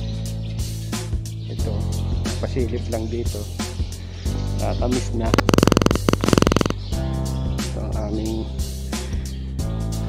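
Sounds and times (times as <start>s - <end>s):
loud rapid buzzing rattle: 5.3s - 6.8s.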